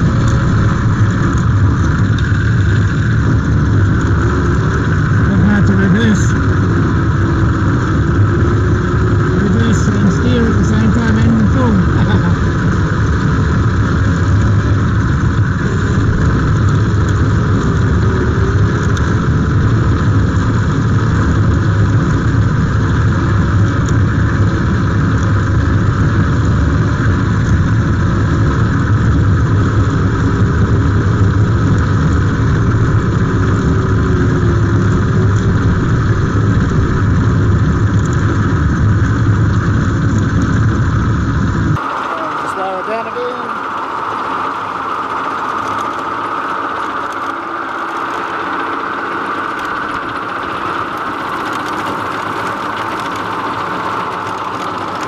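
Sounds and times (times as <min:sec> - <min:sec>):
tractor mower mechanical hum: 0:00.0 - 0:55.0.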